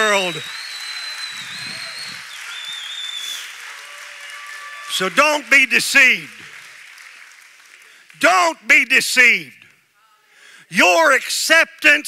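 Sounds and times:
congregation applauding: 0:00.0 - 0:09.8.

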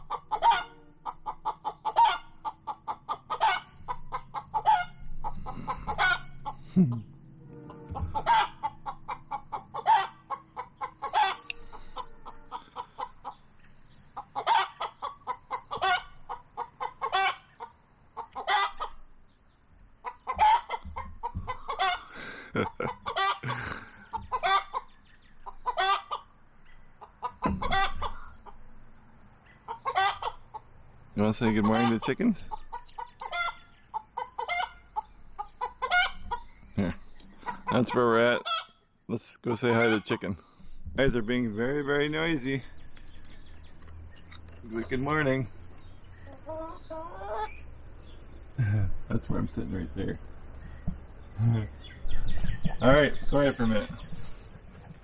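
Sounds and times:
chickens clucking: 0:00.0 - 0:55.0.

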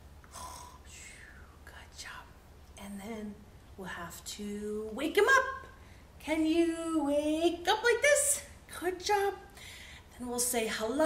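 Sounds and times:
woman speaking: 0:02.8 - 0:09.5, 0:10.2 - 0:11.0.

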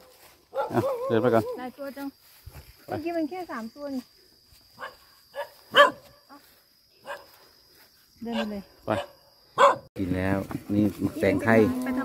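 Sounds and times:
dog barking: 0:00.0 - 0:01.6, 0:04.8 - 0:06.2, 0:07.0 - 0:07.3, 0:08.3 - 0:09.9.

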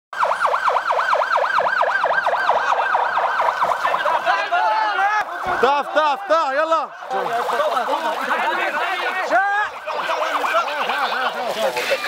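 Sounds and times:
emergency siren yelping: 0:00.1 - 0:11.4.

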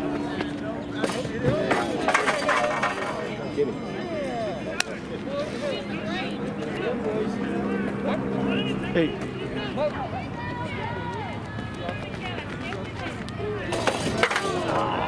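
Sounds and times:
distant people talking: 0:00.0 - 0:15.0.

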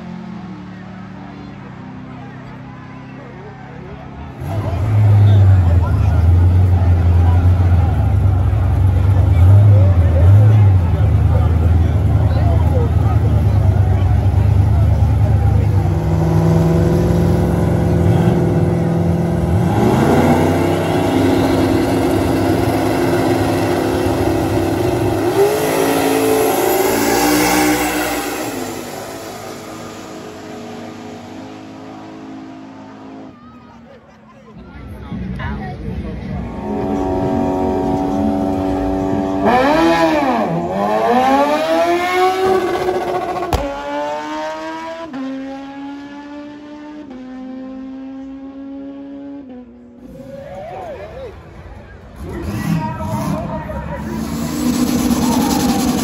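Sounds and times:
drag car engines revving: 0:00.0 - 0:56.0.

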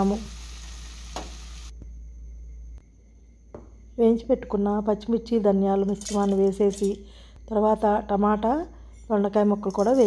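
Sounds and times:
vegetables sizzling in a frying pan: 0:00.0 - 0:01.7.

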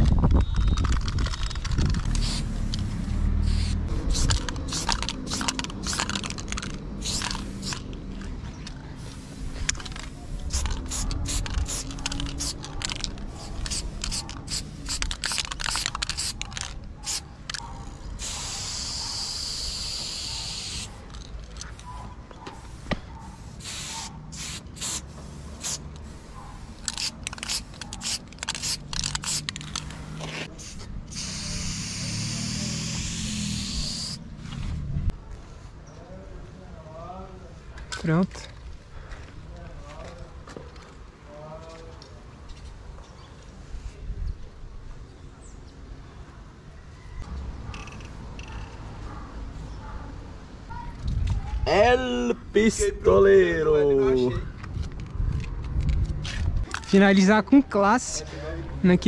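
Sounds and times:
spray paint cans hissing: 0:00.2 - 0:34.3.

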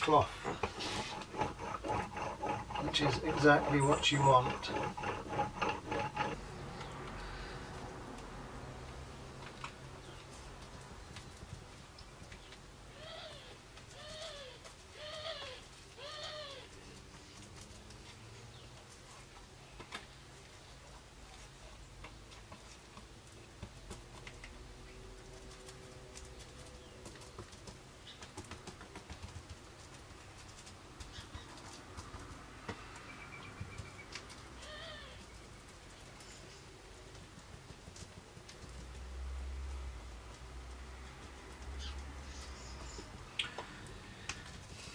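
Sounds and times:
roller rolling over fibreglass cloth: 0:00.0 - 0:07.0.

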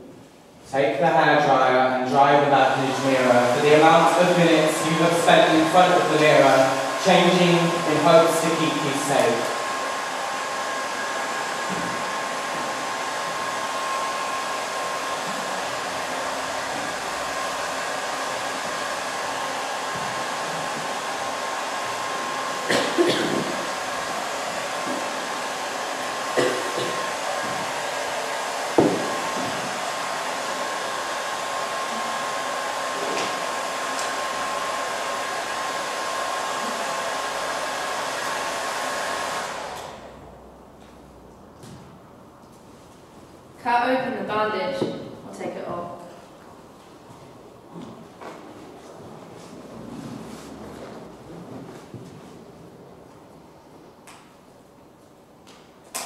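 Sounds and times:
hair dryer running: 0:02.2 - 0:40.3.

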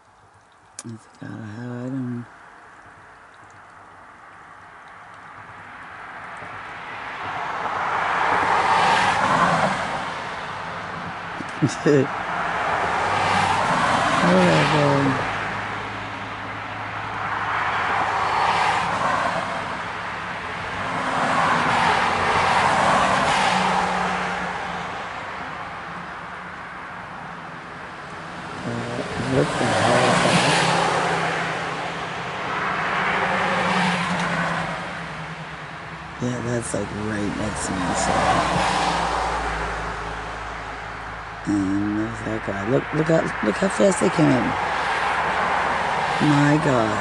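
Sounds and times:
vehicles passing: 0:00.0 - 0:47.0.

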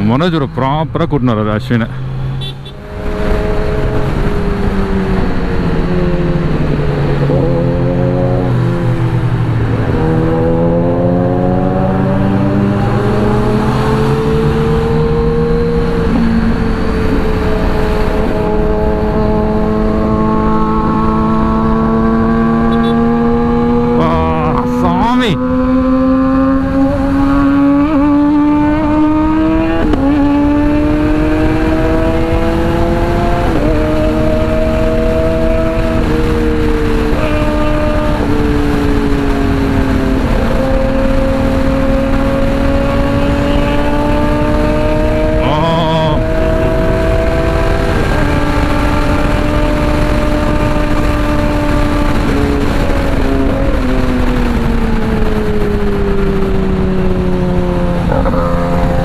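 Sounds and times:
motorcycle engine accelerating: 0:02.0 - 0:59.0.

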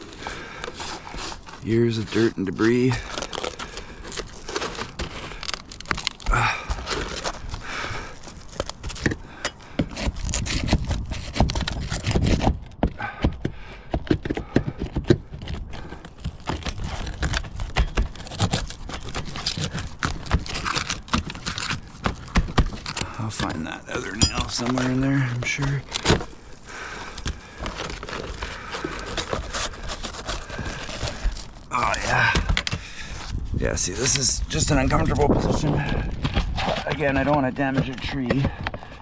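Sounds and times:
dirt being scraped by hands: 0:00.0 - 0:09.2, 0:09.8 - 0:12.6, 0:14.0 - 0:39.0.

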